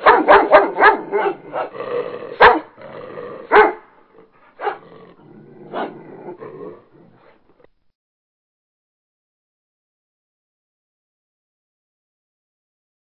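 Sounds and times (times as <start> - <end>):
dog growling and barking: 0.0 - 7.7.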